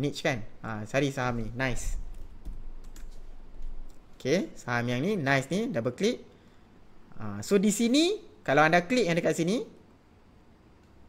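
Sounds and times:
computer keyboard typing: 0:01.8 - 0:04.1.

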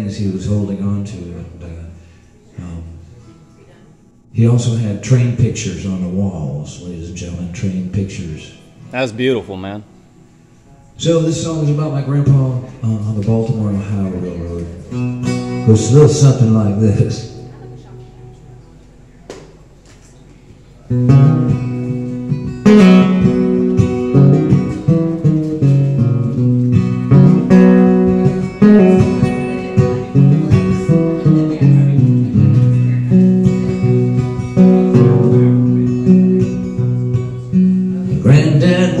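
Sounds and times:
solo acoustic guitar: 0:11.7 - 0:19.2, 0:20.8 - 0:39.0.

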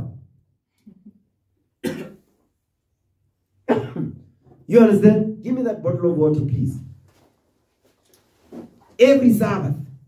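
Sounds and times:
man clearing throat: 0:01.8 - 0:02.3, 0:03.7 - 0:04.3
man coughing: 0:01.8 - 0:02.3, 0:03.7 - 0:04.3.

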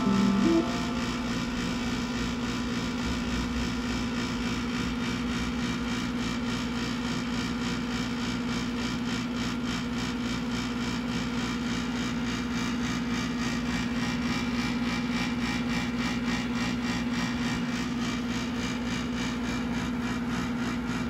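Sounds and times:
mechanical hum and whir: 0:00.0 - 0:21.0.

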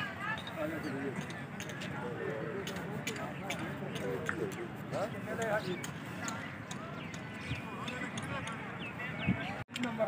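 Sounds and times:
men chattering: 0:00.4 - 0:10.0.

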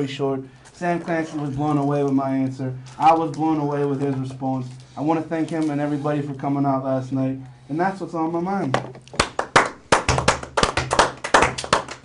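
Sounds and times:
group of people clapping: 0:09.1 - 0:12.0.

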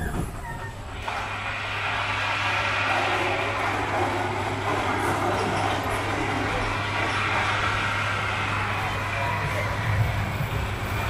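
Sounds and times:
roller coaster bump: 0:00.0 - 0:11.0
roller coaster rolling on track: 0:00.0 - 0:11.0.

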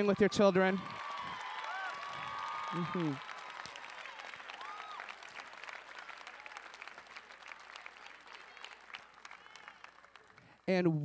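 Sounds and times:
audience applause: 0:00.0 - 0:10.6.

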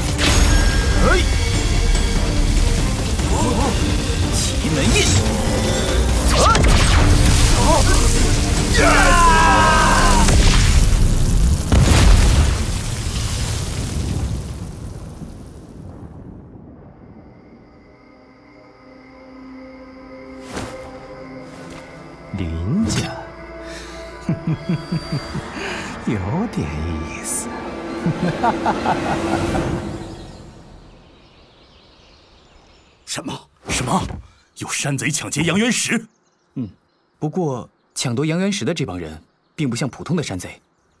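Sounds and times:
explosion boom: 0:10.0 - 0:17.6
soft music tones: 0:19.1 - 0:29.7.

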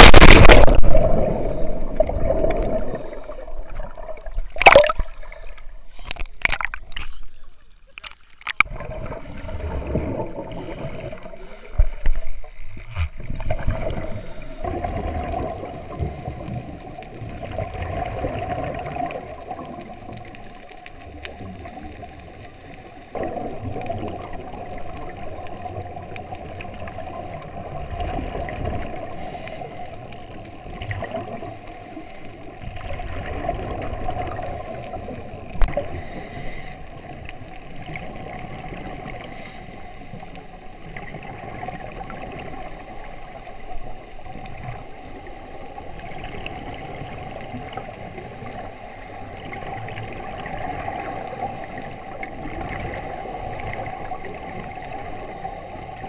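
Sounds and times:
regulator bubbles gurgling: 0:00.0 - 0:07.3, 0:08.5 - 0:39.4, 0:40.1 - 0:56.0
water rushing underwater: 0:00.0 - 0:56.0.

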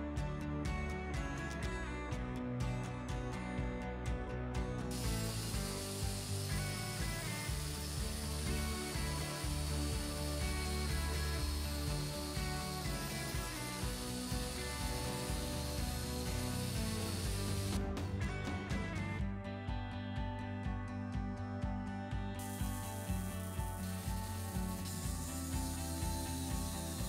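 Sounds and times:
background music: 0:00.0 - 0:27.0
angle grinder grinding steel: 0:04.9 - 0:17.8, 0:22.4 - 0:27.0.

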